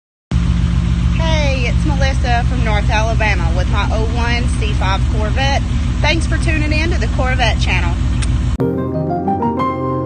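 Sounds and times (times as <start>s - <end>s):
car engine idling: 0.3s - 8.6s.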